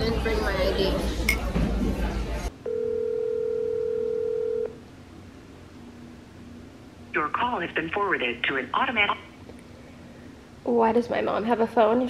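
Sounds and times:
telephone ringback tone: 2.7s - 4.7s.

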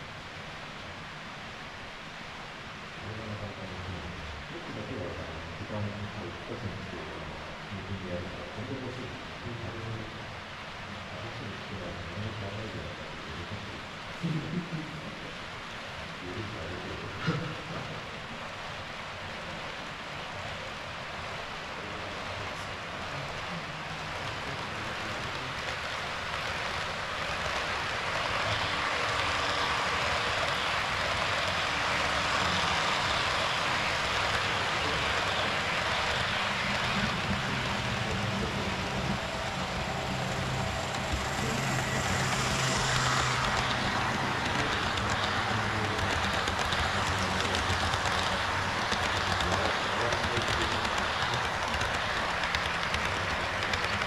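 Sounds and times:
model train wheels rolling: 22.0s - 54.0s
low hum: 28.0s - 47.4s.

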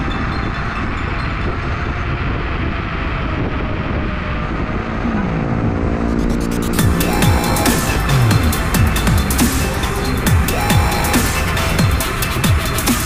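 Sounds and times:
low tone sliding downward: 0.0s - 12.9s
wind rushing over microphone: 0.0s - 12.9s.

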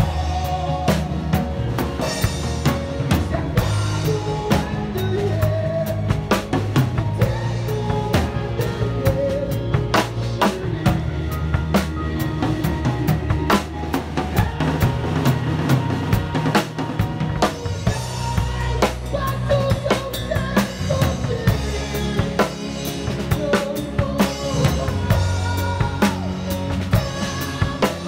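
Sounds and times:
drum kit groove: 0.0s - 28.0s
recorded song: 0.0s - 28.0s.

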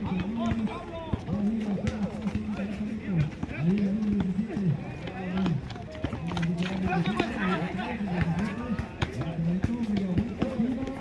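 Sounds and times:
basketball bouncing on asphalt: 0.0s - 11.0s
footsteps running: 0.0s - 11.0s
man talking: 0.0s - 11.0s.

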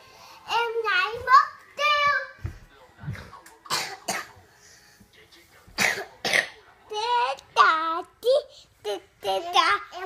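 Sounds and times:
person coughing: 3.7s - 4.4s, 5.8s - 6.6s.

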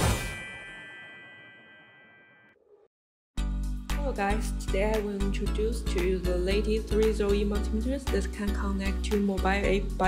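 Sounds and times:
bright chime-like ding: 0.0s - 2.5s.

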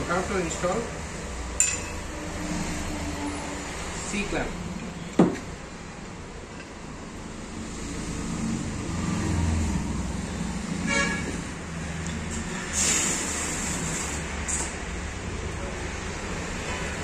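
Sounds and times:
road traffic rumbling: 0.0s - 17.0s
vehicle horn toot: 10.8s - 11.4s.

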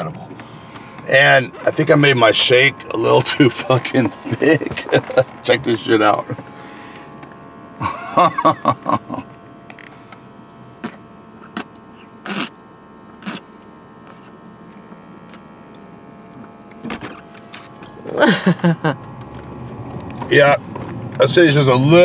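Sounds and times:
faint steady hum: 0.0s - 22.0s
person laughing: 4.0s - 5.4s, 7.8s - 9.3s, 18.0s - 19.0s
gulps and clicks: 10.8s - 12.6s, 13.2s - 14.4s.

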